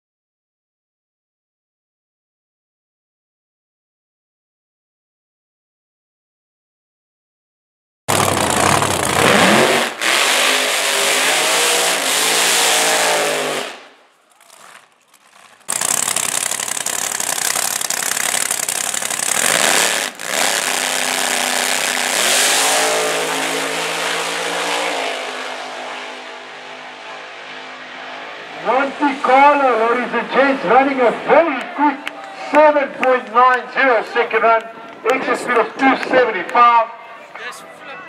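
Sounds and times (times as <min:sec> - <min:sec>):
car engine at full throttle: 0:08.1 - 0:31.0.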